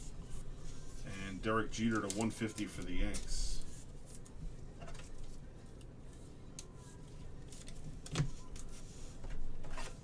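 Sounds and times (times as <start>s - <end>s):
plastic sleeve rustling: 1.0s - 4.2s.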